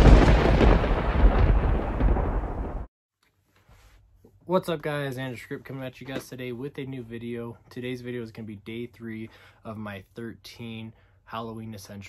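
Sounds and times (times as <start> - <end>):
thunder crash: 0.0 - 2.9.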